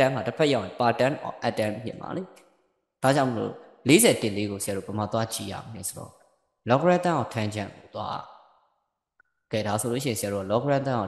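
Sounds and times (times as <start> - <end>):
man speaking: 0.0 - 2.3, 3.0 - 6.1, 6.7 - 8.2, 9.5 - 11.0.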